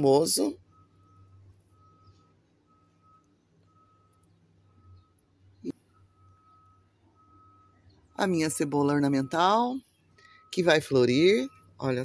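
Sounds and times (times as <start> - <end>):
electronic beep repeating: 0.0 - 12.0.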